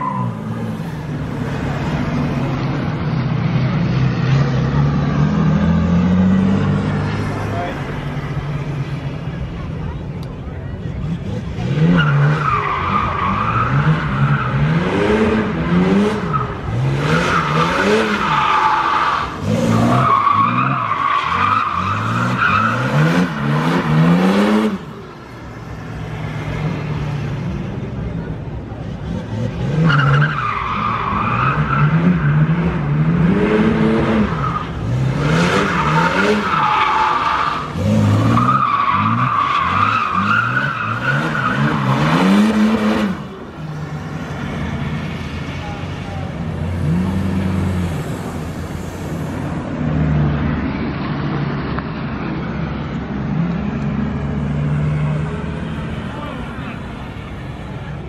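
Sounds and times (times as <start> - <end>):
car engine revving: 0.0 - 10.0, 10.8 - 50.6
tyres squealing: 16.2 - 24.6, 34.2 - 43.4.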